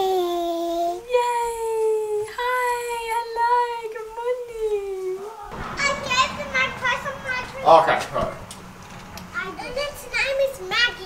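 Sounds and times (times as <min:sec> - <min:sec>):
children chattering: 0:05.2 - 0:11.0.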